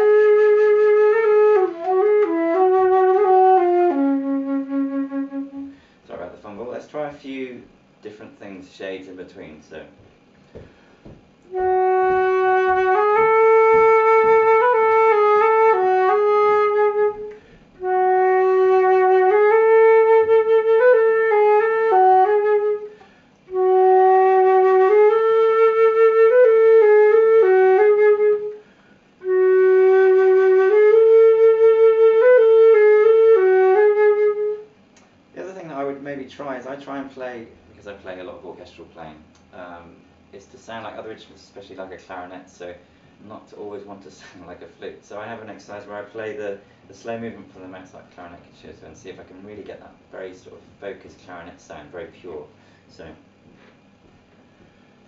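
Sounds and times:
flute melody: 0:00.0 - 0:05.8, 0:11.5 - 0:28.6, 0:29.2 - 0:34.7
flute player breathing: 0:05.6 - 0:06.1, 0:10.4 - 0:11.6, 0:17.2 - 0:17.9, 0:22.8 - 0:23.5, 0:28.5 - 0:29.2, 0:42.8 - 0:43.2, 0:52.6 - 0:52.9, 0:54.4 - 0:55.0.

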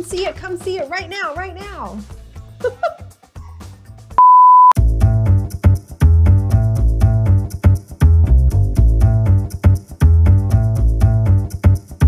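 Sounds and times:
electronic beep: 0:04.2 - 0:04.8
music with deep bass: 0:04.8 - 0:12.0.

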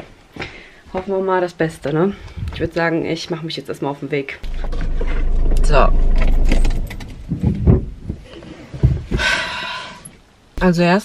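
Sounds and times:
pulsing rumble inside car: 0:04.4 - 0:08.0
soft knocks and rattles: 0:04.4 - 0:09.2.

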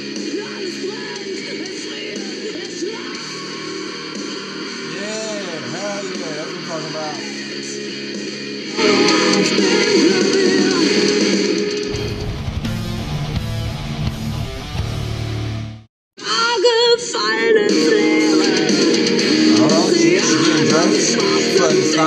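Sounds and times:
drums: 0:00.0 - 0:22.0
woman singing: 0:00.3 - 0:03.5, 0:08.7 - 0:11.2, 0:16.2 - 0:22.0
distorted electric guitar: 0:03.1 - 0:15.9.

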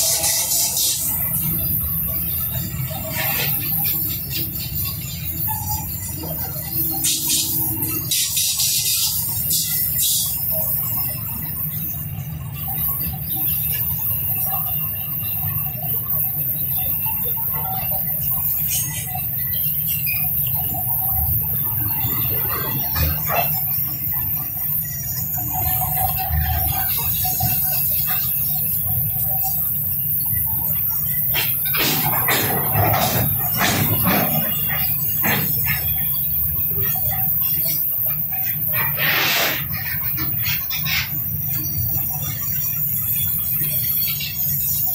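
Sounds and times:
wheels squealing: 0:00.0 - 0:44.9
freight wagons rumbling on rails: 0:10.5 - 0:39.0
train wheels rumbling on rails: 0:30.9 - 0:37.5.

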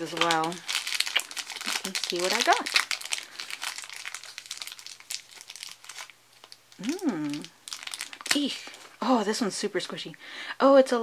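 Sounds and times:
plastic wrapper crinkling: 0:00.0 - 0:09.0.

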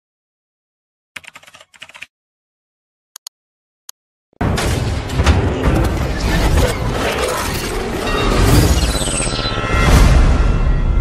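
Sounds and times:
computer keyboard typing: 0:01.2 - 0:02.1.

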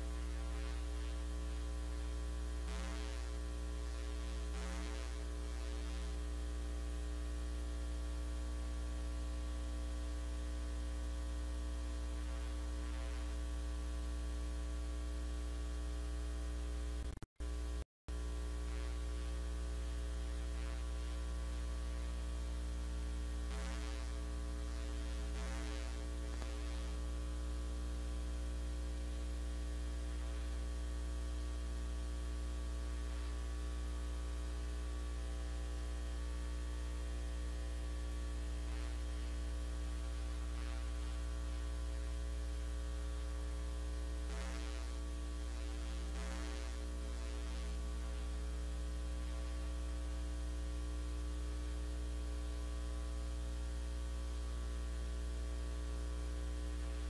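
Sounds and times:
electrical mains hum: 0:00.0 - 0:57.0.

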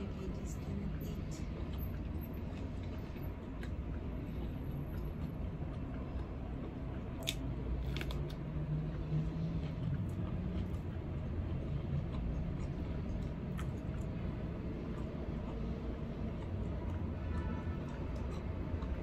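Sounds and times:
person chewing food: 0:00.6 - 0:19.0
short clicks and crunches: 0:07.2 - 0:08.4.

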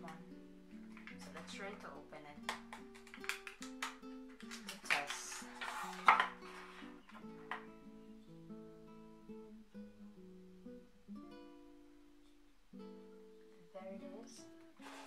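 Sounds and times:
acoustic guitar music: 0:00.0 - 0:15.0
plastic blister pack snapping: 0:02.4 - 0:06.4
plastic packaging crinkling: 0:02.6 - 0:07.1.

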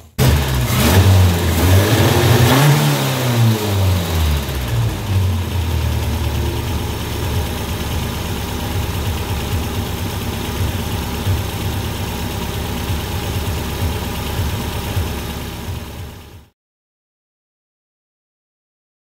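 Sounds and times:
car engine revving and idling: 0:00.0 - 0:16.5.

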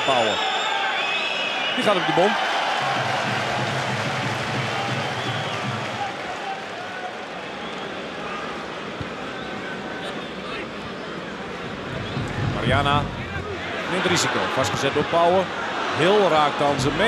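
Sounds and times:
stadium crowd hubbub: 0:00.0 - 0:17.0.

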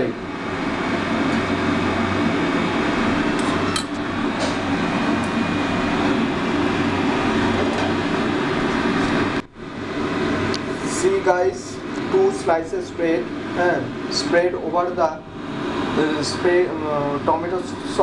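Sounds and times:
mechanical hum and hiss: 0:00.0 - 0:18.0.

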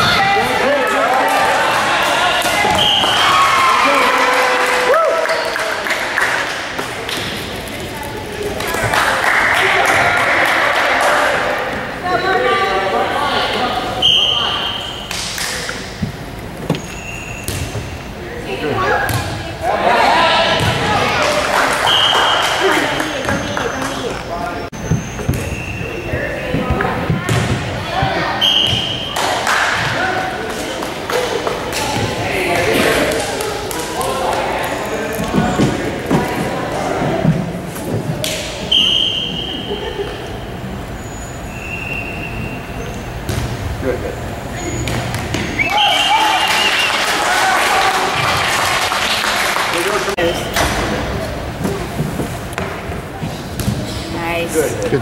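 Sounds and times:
murmur of voices: 0:00.0 - 0:16.7, 0:18.0 - 0:55.0.

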